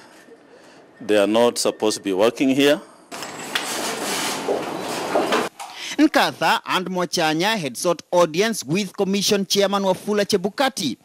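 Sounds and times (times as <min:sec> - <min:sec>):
office background noise: 0:00.0 - 0:10.9.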